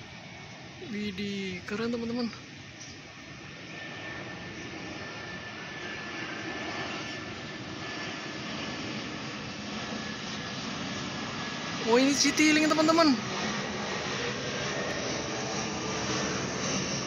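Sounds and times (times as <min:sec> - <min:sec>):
high engine whine: 0:00.0 - 0:17.0
jet airliner passing overhead: 0:00.0 - 0:17.0.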